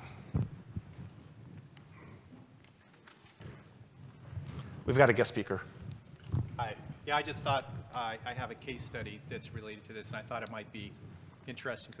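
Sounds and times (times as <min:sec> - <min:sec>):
microphone handling thumps: 0:00.3 - 0:01.6, 0:05.8 - 0:08.0
man speaking: 0:06.6 - 0:12.0.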